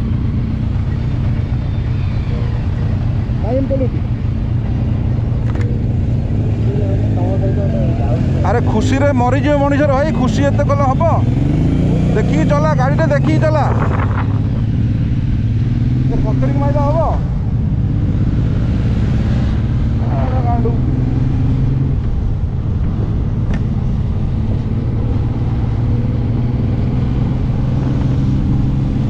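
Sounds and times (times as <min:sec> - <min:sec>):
motorcycle engine running: 0:00.0 - 0:29.0
road noise: 0:00.0 - 0:29.0
wind noise: 0:09.6 - 0:29.0.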